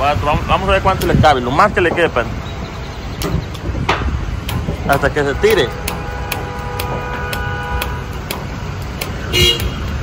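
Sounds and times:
fuel pump humming: 0:00.2 - 0:10.0.

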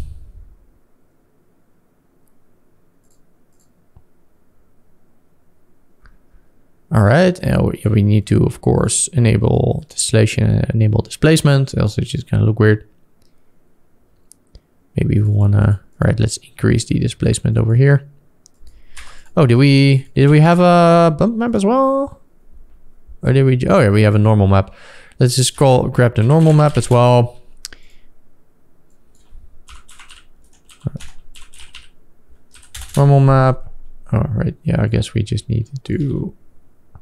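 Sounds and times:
computer mouse clicks: 0:03.0 - 0:03.8
computer keyboard typing: 0:18.5 - 0:19.4, 0:25.5 - 0:27.3, 0:29.1 - 0:33.1.

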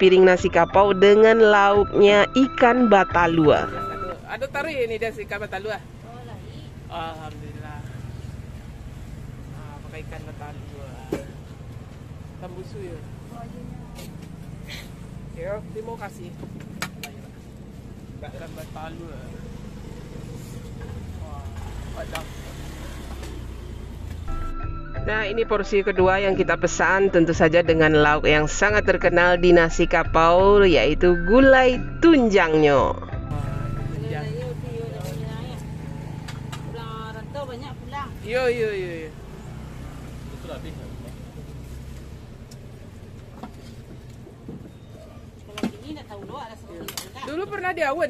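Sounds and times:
vehicle engine rumbling: 0:00.0 - 0:48.0.

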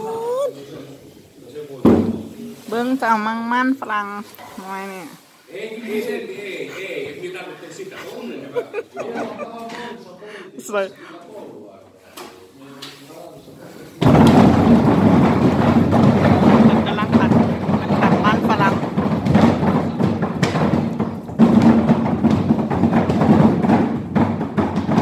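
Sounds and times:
potatoes clattering and tumbling: 0:14.0 - 0:25.0.

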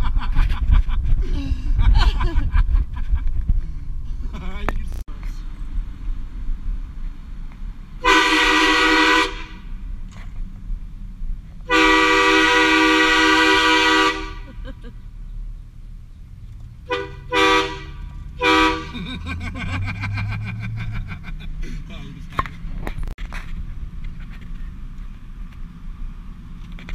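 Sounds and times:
road noise: 0:00.0 - 0:26.9
truck engine: 0:00.0 - 0:26.9
train horn blasts: 0:08.0 - 0:09.6, 0:11.6 - 0:14.4, 0:16.8 - 0:19.0.

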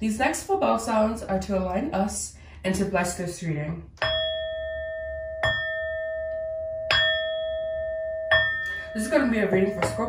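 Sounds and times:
bell ringing: 0:04.0 - 0:10.0.

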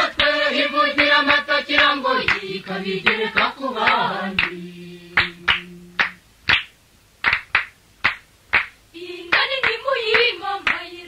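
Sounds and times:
hand claps: 0:00.0 - 0:00.4, 0:01.0 - 0:04.6, 0:05.2 - 0:10.9
held sung note: 0:04.4 - 0:06.2.

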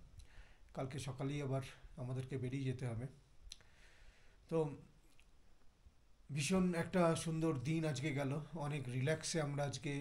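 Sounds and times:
man speaking: 0:00.8 - 0:03.2, 0:04.5 - 0:04.9, 0:06.3 - 0:10.0.

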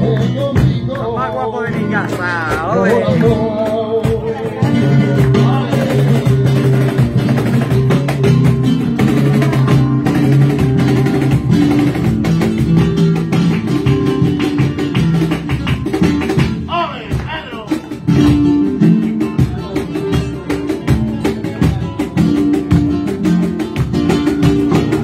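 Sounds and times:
cajon beats: 0:00.0 - 0:25.0
rhythmic handclaps: 0:00.0 - 0:25.0
spanish guitar: 0:00.0 - 0:25.0
person calling out: 0:16.7 - 0:17.9.

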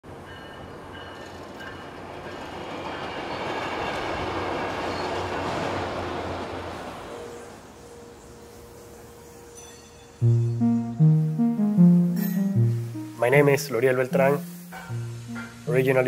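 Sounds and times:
railroad crossing bells: 0:00.1 - 0:03.9, 0:07.2 - 0:11.3, 0:14.2 - 0:16.0.

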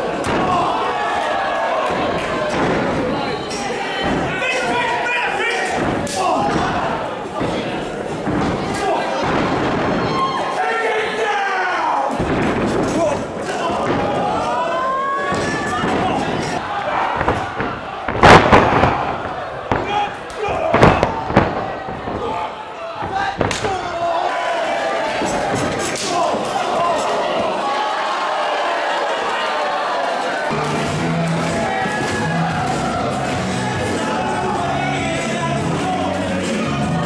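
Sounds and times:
people shouting: 0:00.0 - 0:30.6, 0:31.3 - 0:37.0
voices shouting: 0:13.0 - 0:30.5.

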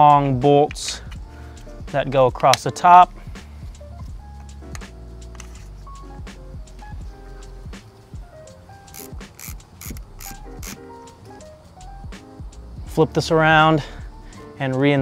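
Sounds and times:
light percussion beat: 0:03.2 - 0:14.1.

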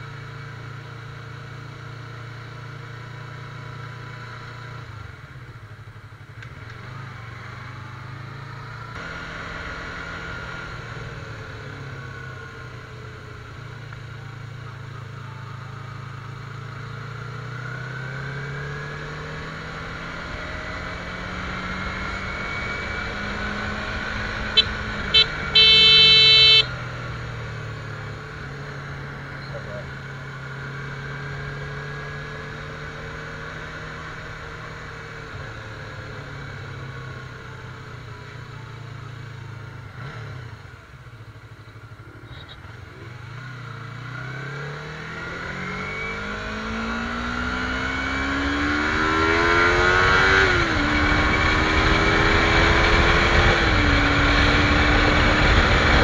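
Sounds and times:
motorcycle engine revving: 0:06.3 - 0:38.0, 0:38.8 - 0:56.0
motorcycle horn toots: 0:24.4 - 0:26.8.

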